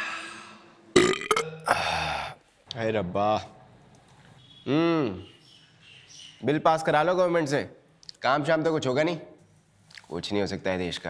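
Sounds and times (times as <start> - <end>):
man burping loudly: 0.9 - 2.4.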